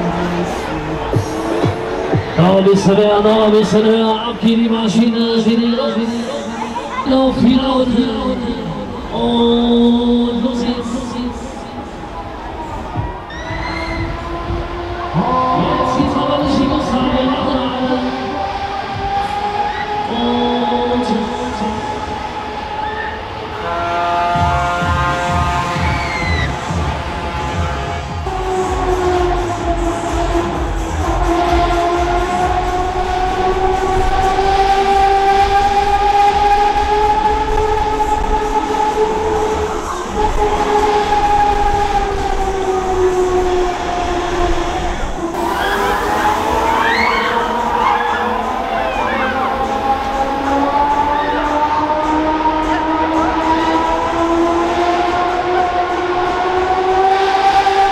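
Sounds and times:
low pulsing beat: 0.0s - 4.9s, 8.4s - 19.7s, 24.3s - 57.9s
horn-like chord tones: 13.9s - 57.9s
quick high-pitched glides: 45.4s - 51.6s.

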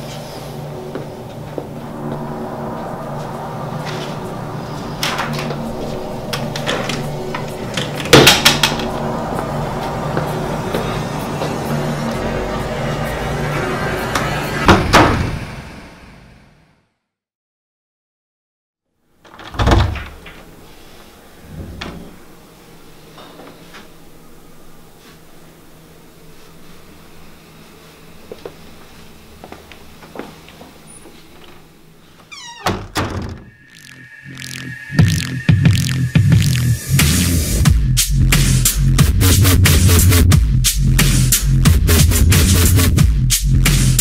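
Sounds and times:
door thudding with rattle: 19.3s - 20.4s, 32.4s - 33.5s.

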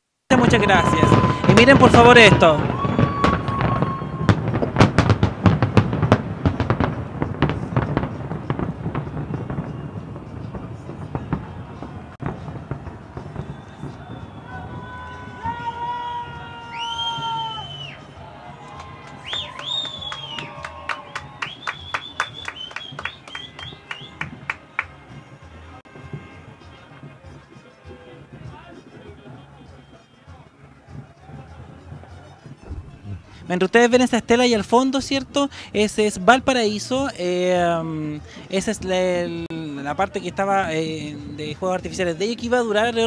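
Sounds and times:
fireworks bangs and crackles: 0.3s - 43.0s.

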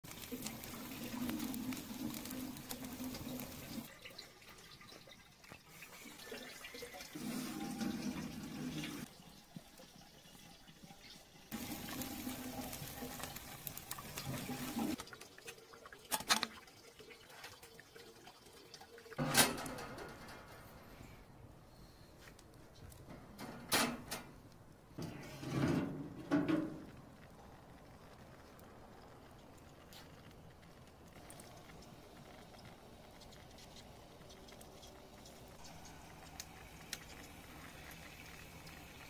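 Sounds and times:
water running onto metal wheel: 0.0s - 20.5s, 25.0s - 39.0s.

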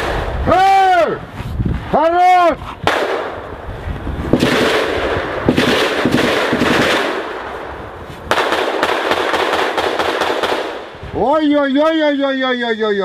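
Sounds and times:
automatic gunfire bursts: 4.4s - 7.2s, 8.3s - 10.8s.

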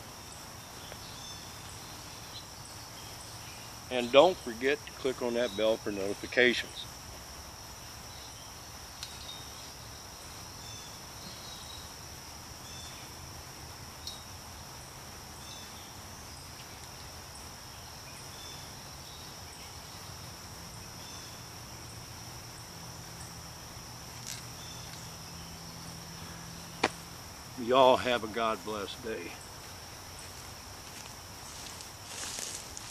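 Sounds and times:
high-pitched insect chorus: 0.0s - 32.9s.

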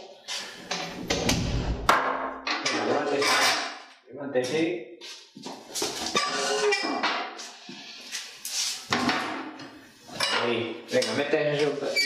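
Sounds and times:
handling and shuffling noise: 7.4s - 8.9s.

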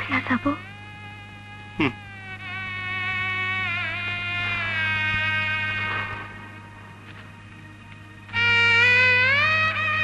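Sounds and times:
steady low hum: 0.0s - 10.0s
high held melody note: 8.3s - 10.0s.

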